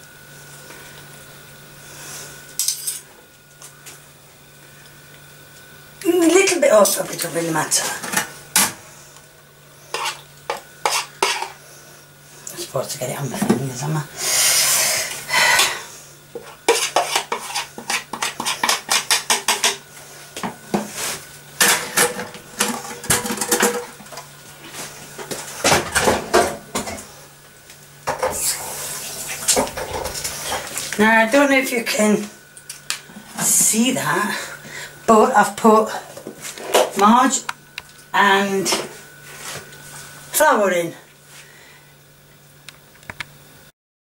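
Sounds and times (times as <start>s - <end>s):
utensil scraping plastic pan: 16.7s - 19.8s.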